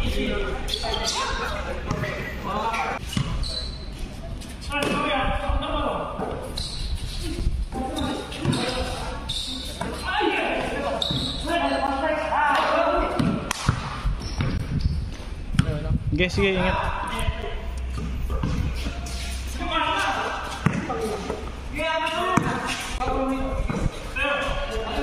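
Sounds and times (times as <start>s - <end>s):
basketball bouncing on concrete: 13.0s - 15.8s, 17.9s - 18.8s, 20.6s - 21.4s.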